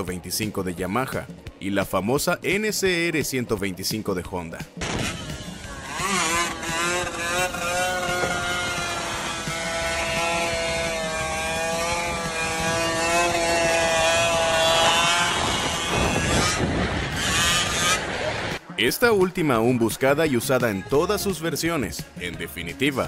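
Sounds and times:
motorcycle engine revving: 0:04.8 - 0:18.7
rushing noise: 0:13.5 - 0:18.8.

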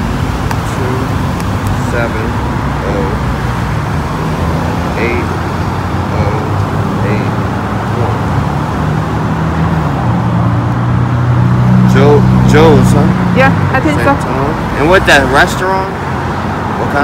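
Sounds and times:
road traffic: 0:00.0 - 0:17.0
vehicle engine low hum: 0:00.0 - 0:17.0.

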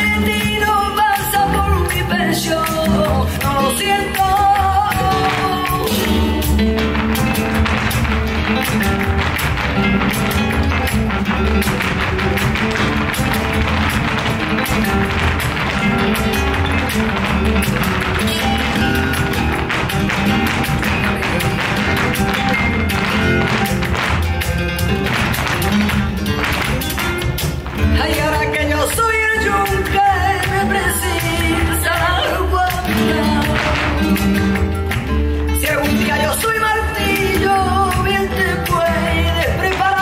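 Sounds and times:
dancers' shoes tapping on stage: 0:00.0 - 0:40.0
flamenco music: 0:00.0 - 0:40.0.

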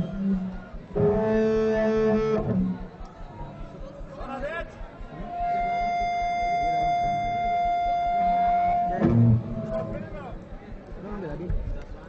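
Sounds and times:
electric guitar feedback: 0:00.0 - 0:03.9, 0:05.1 - 0:10.4
loud low guitar note: 0:05.6 - 0:10.0.

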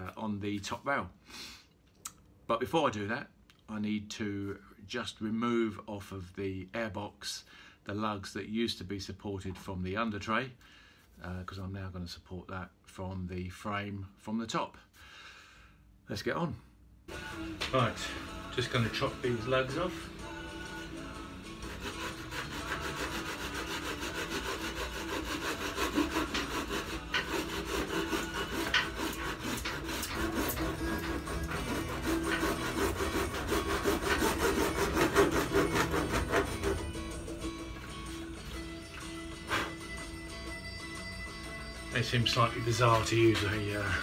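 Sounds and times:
handsaw cutting plastic: 0:17.5 - 0:37.6, 0:39.4 - 0:40.0.

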